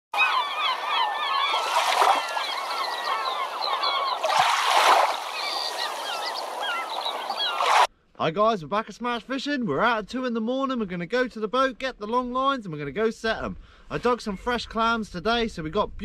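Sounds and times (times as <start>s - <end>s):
flock of birds calling: 0.2s - 7.9s
water splashing: 1.4s - 7.9s.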